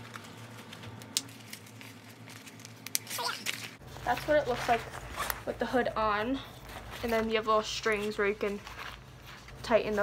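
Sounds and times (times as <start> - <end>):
plastic crinkling: 0.0 - 10.0.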